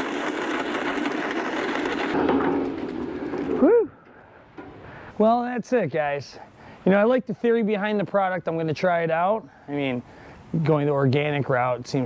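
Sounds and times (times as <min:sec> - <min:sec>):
lawn spreader rattling: 0:00.0 - 0:03.6.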